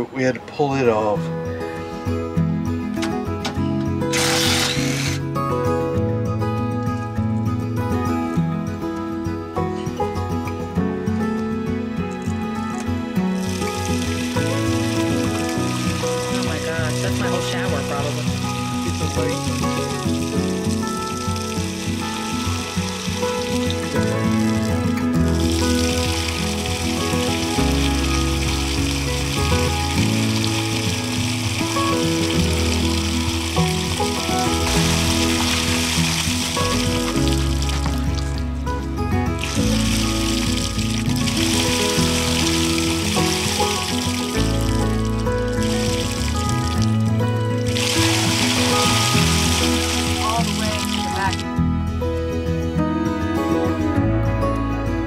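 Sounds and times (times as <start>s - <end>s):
background music with bass line: 1.2s - 55.0s
water splashing onto ground: 4.1s - 5.2s, 12.8s - 51.5s.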